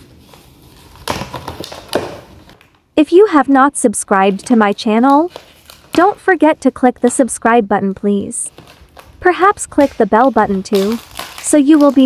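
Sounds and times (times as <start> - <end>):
plastic bottle crackling: 0.0 - 3.0, 4.1 - 6.5, 8.5 - 12.0.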